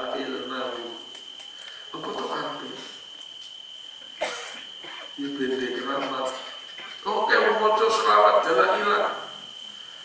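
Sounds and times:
high-pitched whine: 0.0s - 10.0s
man coughing: 4.2s - 5.2s, 5.8s - 7.0s.

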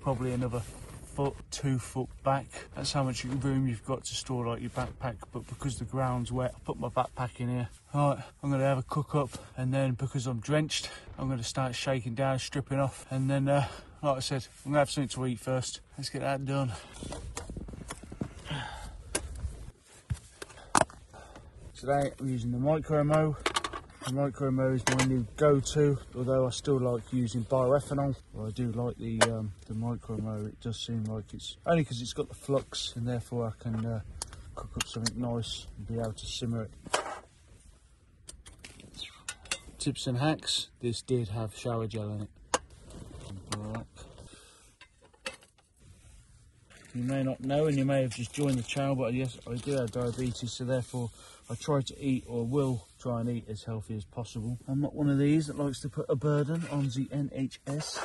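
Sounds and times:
camping gear clicking and knocking: 16.8s - 25.7s, 29.0s - 29.7s, 36.8s - 37.3s, 38.2s - 39.9s, 44.8s - 45.7s.

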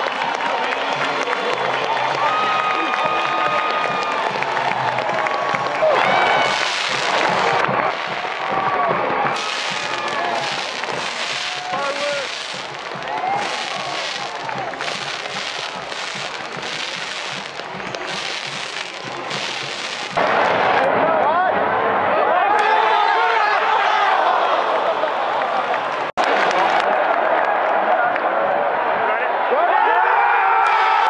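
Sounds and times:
crowd cheering and shouting: 0.0s - 31.0s
fireworks crackling and bursting: 1.6s - 20.5s.

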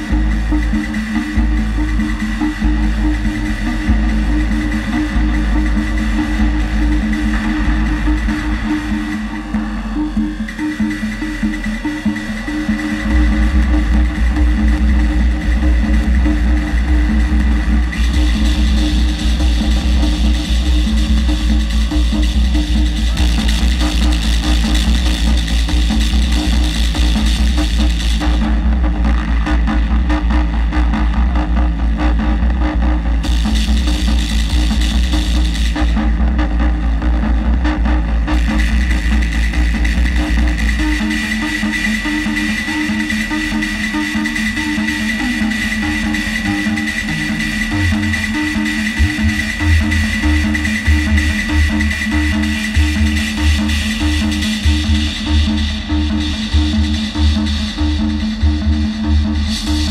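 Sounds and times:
sub-bass drone: 0.0s - 59.9s
synthesizer noise music: 0.0s - 59.9s.

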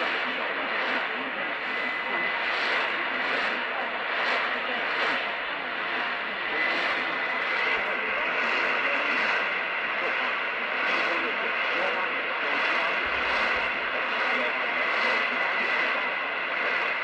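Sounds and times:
faint speech in noise: 0.0s - 17.0s
radio static and hiss: 0.0s - 17.0s.

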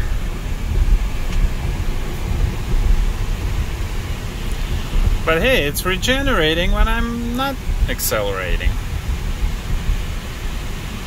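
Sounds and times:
wind noise in car cabin: 0.0s - 11.0s.

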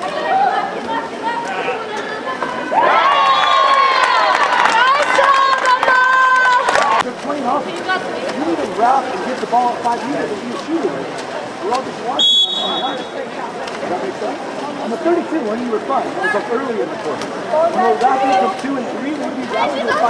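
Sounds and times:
crowd shouting and talking: 0.0s - 20.0s
referee's whistle blast: 12.2s - 13.1s.

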